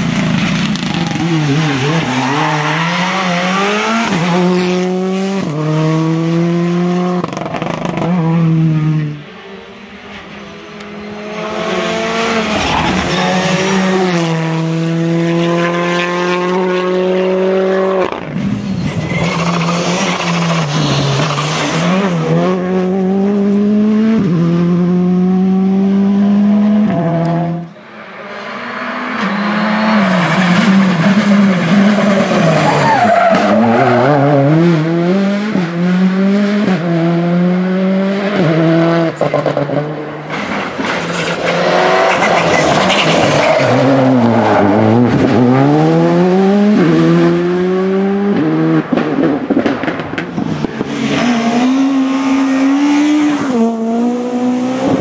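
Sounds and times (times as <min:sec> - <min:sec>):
rally car engines revving: 0:00.0 - 0:55.0
tyre squeal: 0:18.5 - 0:21.9, 0:29.3 - 0:34.2, 0:42.1 - 0:44.7.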